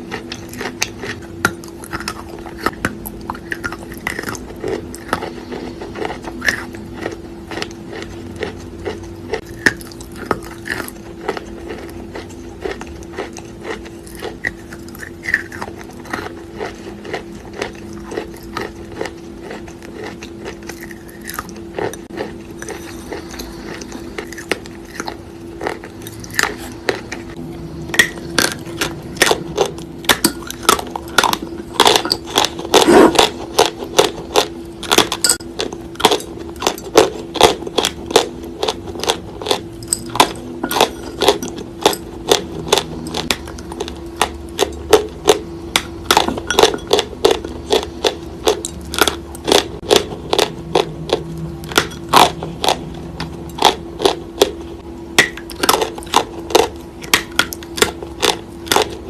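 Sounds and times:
chalk being chewed: 0.0 - 27.4
low hum: 0.0 - 59.0.

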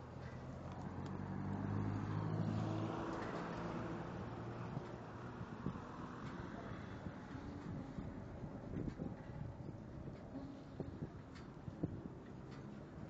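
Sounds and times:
street noise: 0.0 - 13.0.

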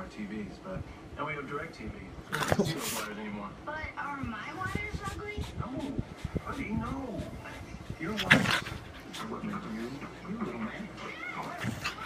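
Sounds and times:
dog growling and barking: 8.1 - 9.0, 11.4 - 12.0.

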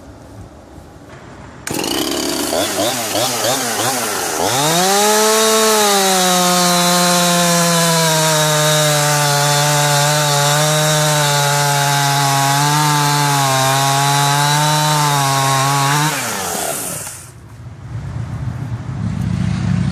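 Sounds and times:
chainsaw cutting log: 1.6 - 17.4.

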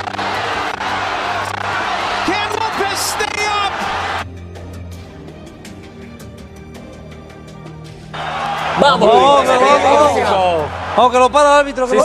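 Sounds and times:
crowd roaring and cheering: 0.0 - 4.3, 8.1 - 12.0.

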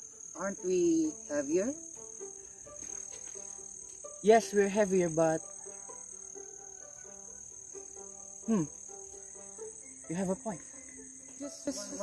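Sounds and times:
insect chorus: 0.0 - 12.0
plucked string music: 0.0 - 12.0.

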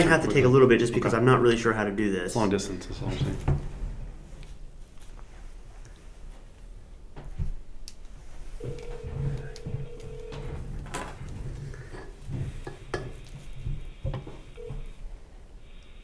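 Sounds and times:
telephone ringback tone: 8.6 - 10.8, 14.5 - 15.0.

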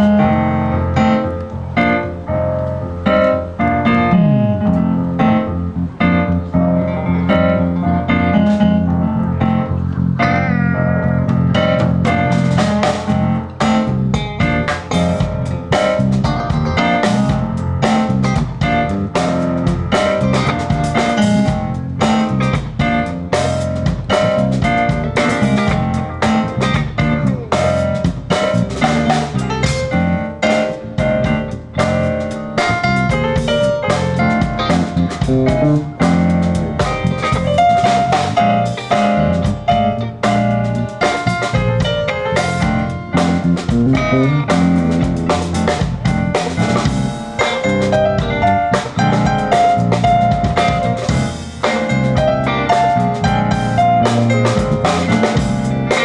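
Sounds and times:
live band playing: 0.0 - 56.0
drum beat with cymbals: 11.6 - 56.0.

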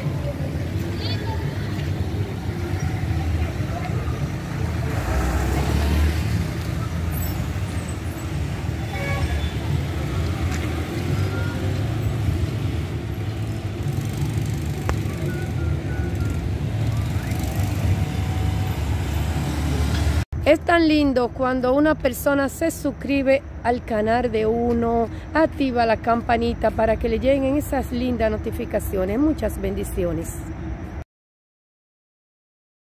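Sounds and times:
traffic rumble: 0.0 - 31.0.

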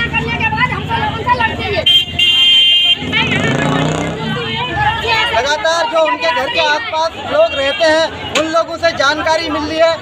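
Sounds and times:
women's raised voices: 0.0 - 8.4
people talking over one another: 0.0 - 10.0.

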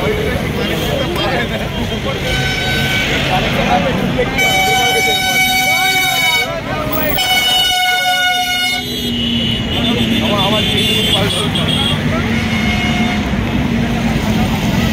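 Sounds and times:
crowd voices: 0.0 - 14.9
vehicle horn blasts: 2.2 - 3.4, 4.3 - 13.4.

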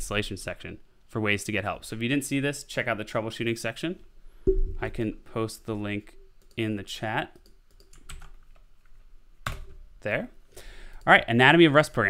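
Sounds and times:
keyboard typing: 7.4 - 8.6.

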